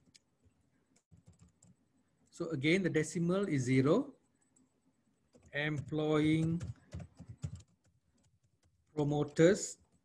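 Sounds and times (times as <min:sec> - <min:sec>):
computer keyboard typing: 0:01.0 - 0:01.8, 0:05.3 - 0:10.0.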